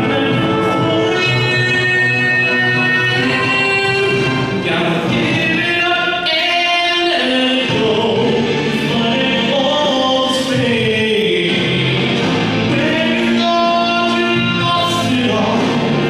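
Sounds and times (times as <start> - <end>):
man singing into microphone: 0.0 - 16.0
recorded backing music: 0.0 - 16.0.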